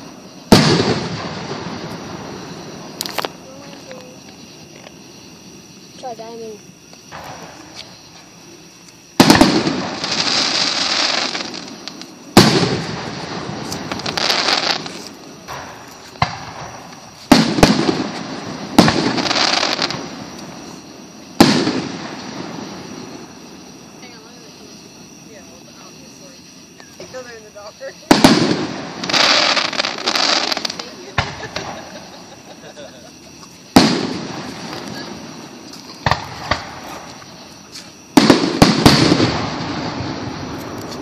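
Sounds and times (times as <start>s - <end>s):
firework bang: 0.0s - 3.4s, 9.2s - 20.7s, 21.3s - 23.4s, 28.1s - 32.3s, 33.7s - 37.2s, 38.1s - 41.0s
firework shells bursting: 28.1s - 41.0s.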